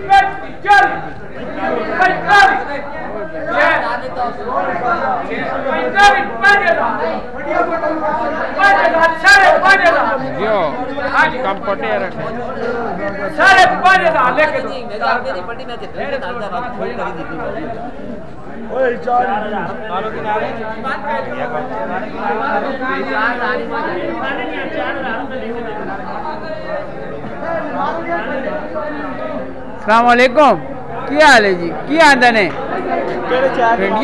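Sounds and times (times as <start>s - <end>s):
chatter of voices: 0.0s - 34.0s
men talking over one another: 0.0s - 34.0s.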